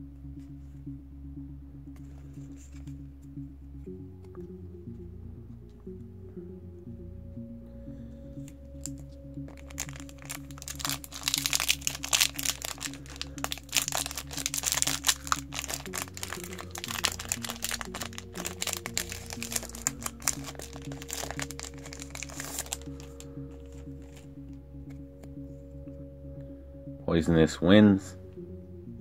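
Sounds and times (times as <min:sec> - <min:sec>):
background music: 0:00.0 - 0:29.0
foil wrapper crinkling: 0:08.8 - 0:24.3.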